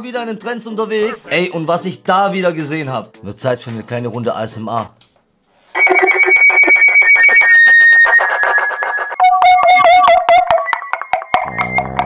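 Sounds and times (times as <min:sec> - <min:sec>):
megaphone pulsing alarm tone: 0:05.7 - 0:12.0.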